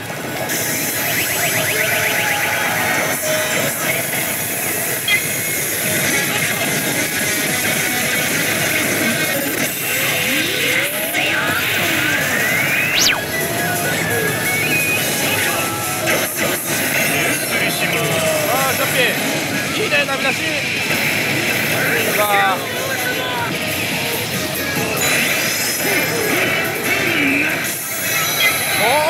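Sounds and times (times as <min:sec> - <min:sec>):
gaming parlour din: 0:00.0 - 0:29.0
electronic sound effects: 0:00.3 - 0:04.2, 0:09.8 - 0:16.1
slot machine bonus music: 0:00.3 - 0:05.4, 0:11.6 - 0:17.3
rising sweep effect: 0:12.5 - 0:13.8.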